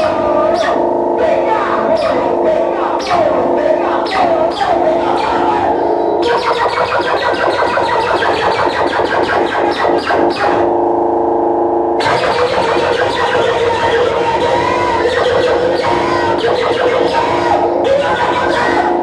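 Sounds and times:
electronic noise music: 0.0 - 19.0.

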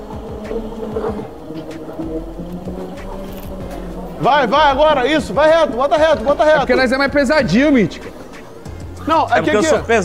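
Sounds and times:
electric kart motor buzzing: 0.0 - 10.0.

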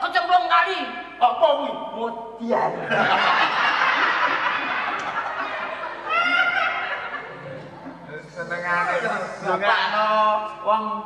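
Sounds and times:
audience laughing: 2.8 - 9.4.

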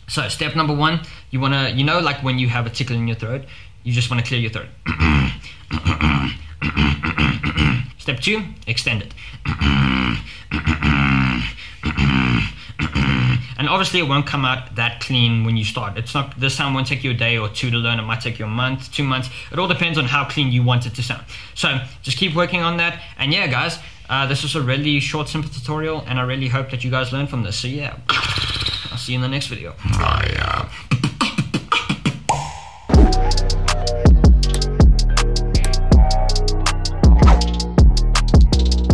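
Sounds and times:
beatbox throat bass growl: 4.8 - 8.0, 9.4 - 13.6, 28.1 - 29.0, 29.8 - 38.9
steady high tone: 32.3 - 38.0.

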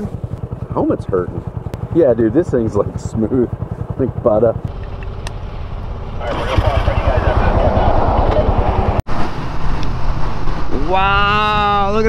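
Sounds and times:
motorcycle engine accelerating: 0.0 - 12.0
wind and road noise: 0.0 - 12.0.

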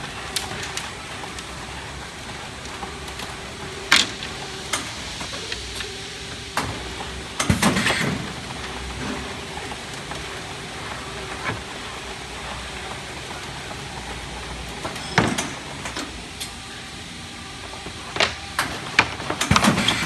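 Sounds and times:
paper machine running: 0.0 - 20.0.

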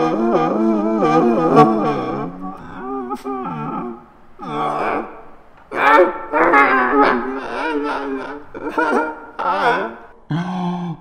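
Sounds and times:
wordless wavering human voice: 0.0 - 11.0.

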